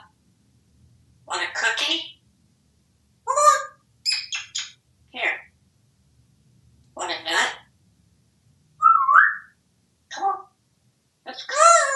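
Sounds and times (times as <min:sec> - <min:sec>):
parrot whistle: 0:08.8 - 0:09.6.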